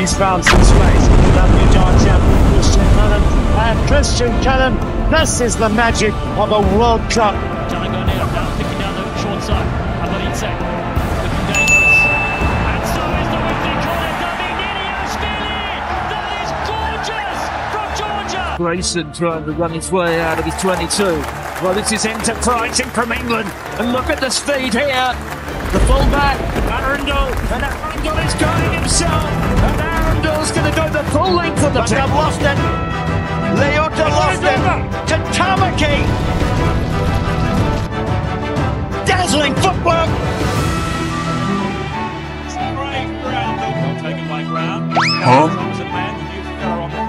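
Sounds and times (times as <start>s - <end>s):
man talking: 0.0s - 10.6s, 11.2s - 25.2s, 25.8s - 32.7s, 42.6s - 47.0s
background music: 0.0s - 47.0s
high steady tone: 11.6s - 13.0s
music with steady beat: 11.8s - 13.0s.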